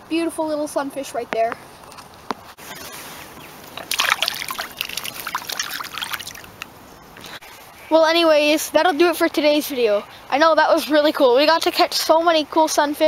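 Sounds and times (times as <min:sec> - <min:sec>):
water splashing and sloshing: 0:02.7 - 0:06.7.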